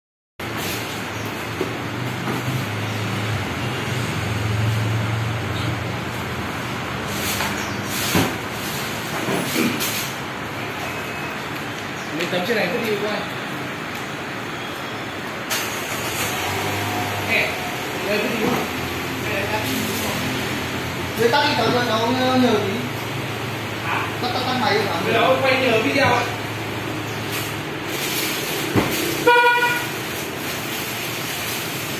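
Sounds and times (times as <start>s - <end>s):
broad background noise: 0.4s - 31.9s
traffic and workshop noise: 0.4s - 31.9s.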